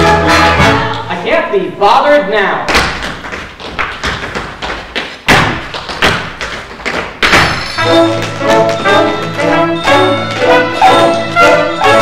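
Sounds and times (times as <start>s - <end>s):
brass band playing: 0.0s - 1.1s, 7.7s - 12.0s
shoes stamping on stage floor: 2.7s - 12.0s.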